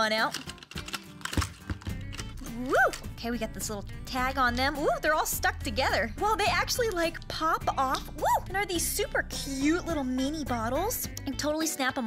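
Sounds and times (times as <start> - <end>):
background music: 0.0 - 12.0
plastic bottles clicking: 0.1 - 3.1
person exclaiming woo: 2.5 - 3.0, 8.2 - 8.5.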